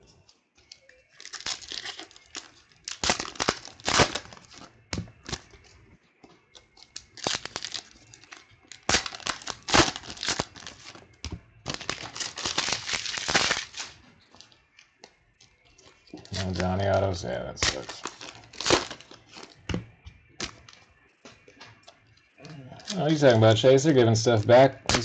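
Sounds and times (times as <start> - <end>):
trading cards rustling: 0.6 - 5.7, 6.6 - 11.1, 11.7 - 14.6, 15.9 - 21.9, 22.8 - 25.0
foil wrappers crinkling and tearing: 0.7 - 5.7, 6.6 - 14.6, 15.8 - 19.7, 20.3 - 20.8, 22.8 - 25.0.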